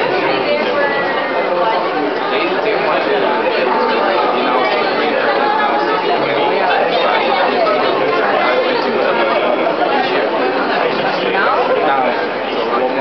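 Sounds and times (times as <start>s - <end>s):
crowd chatter echoing in hall: 0.0s - 13.0s.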